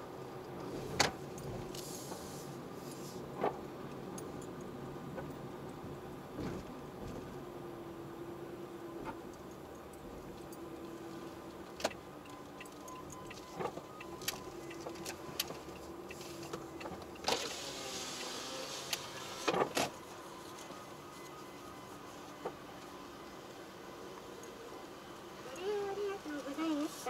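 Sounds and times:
car engine and tyres from inside: 0:00.0 - 0:27.0.

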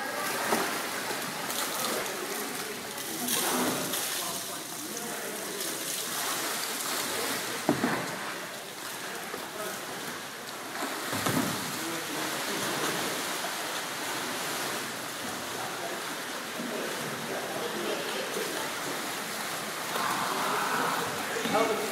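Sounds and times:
kayak paddles splashing water: 0:00.0 - 0:21.9
steady water wash: 0:00.0 - 0:21.9.

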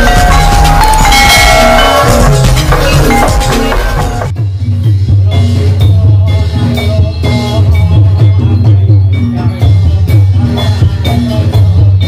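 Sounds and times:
gamelan dance music: 0:00.0 - 0:12.0.

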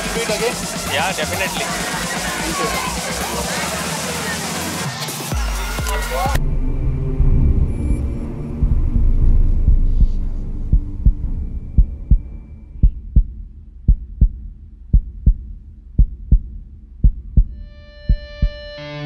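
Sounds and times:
heartbeat double thump: 0:08.5 - 0:18.7.

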